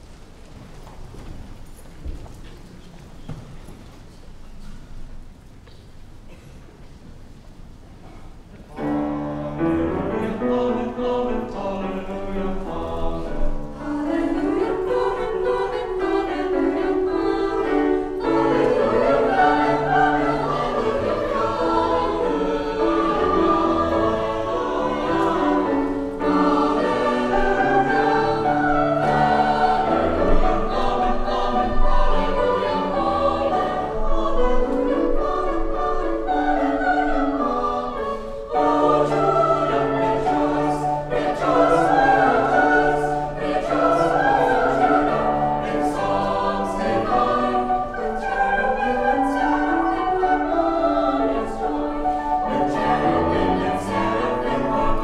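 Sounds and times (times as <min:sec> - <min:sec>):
mixed choir singing: 0:08.8 - 0:55.0.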